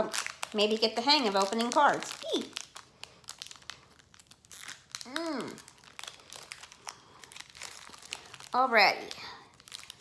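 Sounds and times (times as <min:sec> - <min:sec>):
foil wrapper crinkling: 0:00.0 - 0:10.0.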